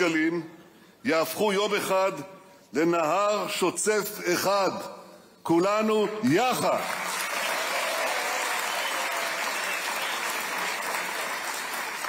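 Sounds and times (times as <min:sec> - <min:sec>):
audience applauding: 0:06.8 - 0:12.0.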